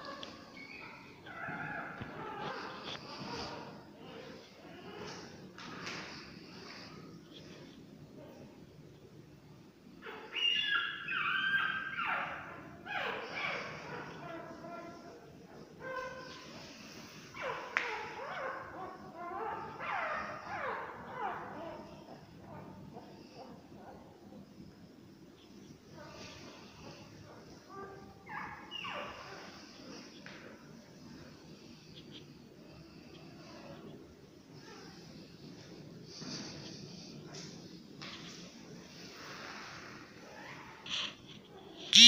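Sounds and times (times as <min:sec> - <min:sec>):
puppies squealing and whimpering: 0:00.4 - 0:05.4, 0:10.0 - 0:15.0, 0:28.2 - 0:30.1
dog whining: 0:10.0 - 0:15.0.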